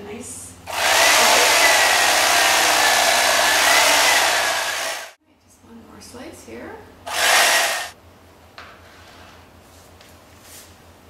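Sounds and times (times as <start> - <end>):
electric knife sawing: 0.7 - 5.2, 7.1 - 8.0.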